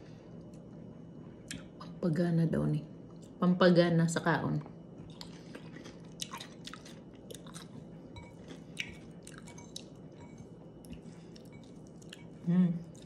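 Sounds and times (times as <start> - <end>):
person chewing food: 5.0 - 13.0.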